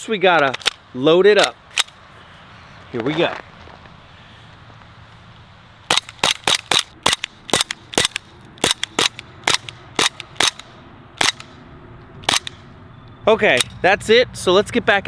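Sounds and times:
airsoft pistol shots: 0:05.9 - 0:11.6.

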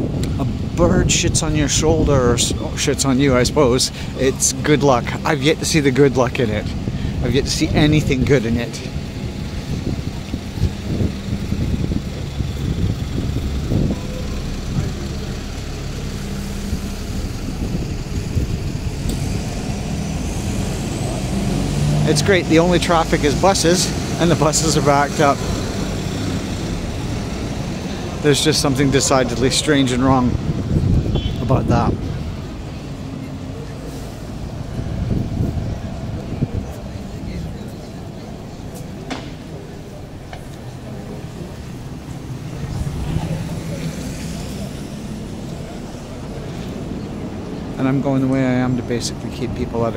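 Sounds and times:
buses idling in traffic: 0:00.0 - 0:49.9
faint voices of passers-by: 0:00.0 - 0:49.9.

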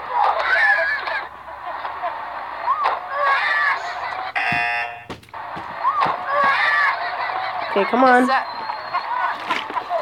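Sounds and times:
harsh buzzer: 0:04.4 - 0:05.7.

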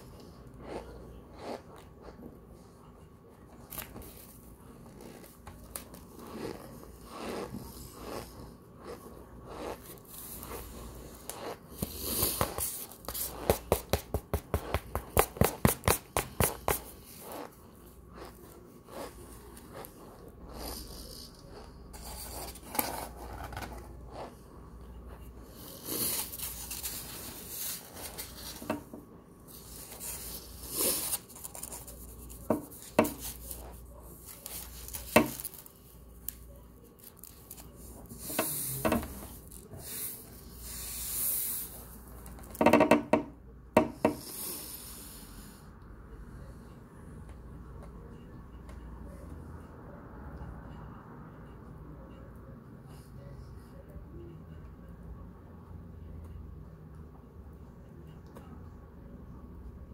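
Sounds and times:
chewing dry powder: 0:00.1 - 0:02.4, 0:04.7 - 0:28.6.

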